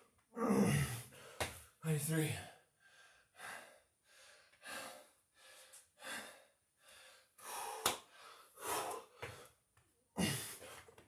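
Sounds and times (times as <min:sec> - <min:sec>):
man panting heavily: 0:02.4 - 0:09.6, 0:10.2 - 0:10.9.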